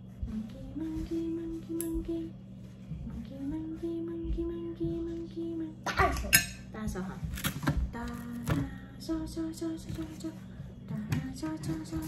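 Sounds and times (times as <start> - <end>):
dishes and cutlery clinking: 5.9 - 6.7.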